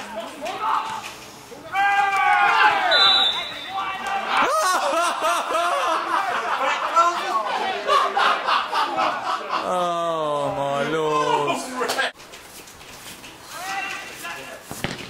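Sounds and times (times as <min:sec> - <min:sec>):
men calling and talking: 0:00.0 - 0:14.8
men shouting: 0:01.6 - 0:03.0, 0:03.6 - 0:08.2, 0:09.6 - 0:11.9.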